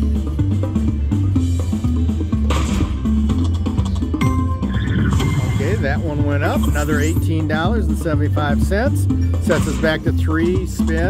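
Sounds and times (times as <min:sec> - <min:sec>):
slot machine game music: 0:00.0 - 0:11.0.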